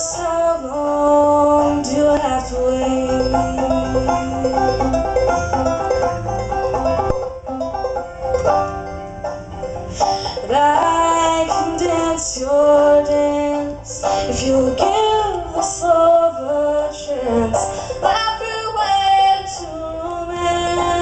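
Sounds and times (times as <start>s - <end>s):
banjo playing: 0.0s - 21.0s.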